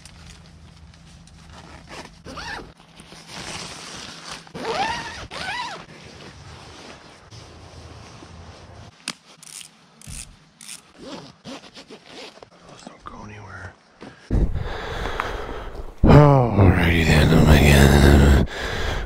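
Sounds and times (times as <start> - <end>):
fabric rustling: 0.1 - 12.6
zipper pulled: 1.4 - 7.3, 9.1 - 12.8.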